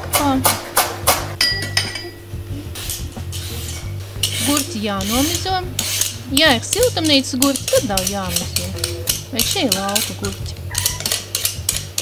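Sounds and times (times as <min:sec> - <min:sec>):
vegetable peeler scraping cucumber: 0:02.8 - 0:12.0.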